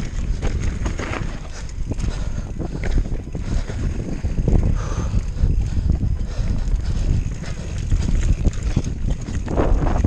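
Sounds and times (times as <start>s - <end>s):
tyres crunching on gravel: 0.0s - 1.7s
bike frame and chain rattling: 0.0s - 10.0s
wind buffeting microphone: 0.0s - 10.0s.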